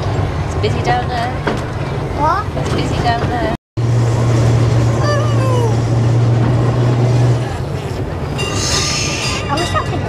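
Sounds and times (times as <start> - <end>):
electric tram hum: 0.0 - 10.0
tram wheel squeal: 8.2 - 10.0.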